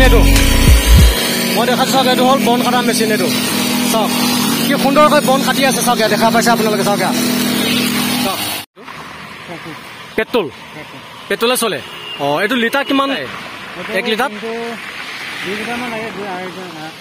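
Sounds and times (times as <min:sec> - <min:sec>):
rap music with heavy bass: 0:00.0 - 0:02.8
brush cutter engine: 0:00.0 - 0:08.6
nylon line cutting grass: 0:00.1 - 0:08.6.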